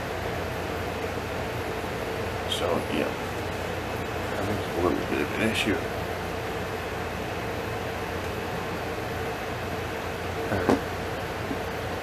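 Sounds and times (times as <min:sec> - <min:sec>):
air conditioner hissing and humming: 0:00.0 - 0:12.0
short knock: 0:10.6 - 0:10.9.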